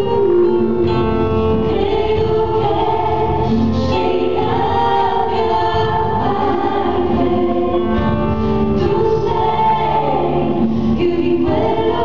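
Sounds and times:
band accompaniment: 0.0s - 12.0s
choir singing gospel song: 0.0s - 12.0s.

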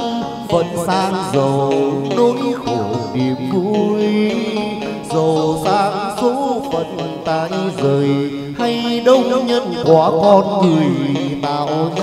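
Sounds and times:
instrumental accompaniment: 0.0s - 12.0s
person singing long wavering notes: 0.0s - 12.0s.

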